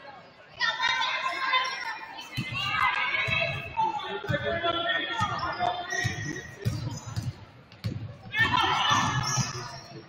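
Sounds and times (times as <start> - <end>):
people shouting in a gym: 8.3 - 9.7.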